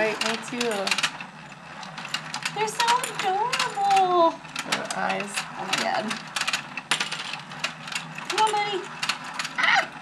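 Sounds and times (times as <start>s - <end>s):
toy game clicking and clattering: 0.0s - 10.0s.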